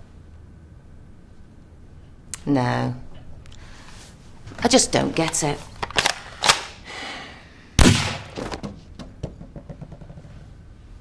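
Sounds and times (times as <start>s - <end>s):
loud sudden bang: 7.8s - 8.4s.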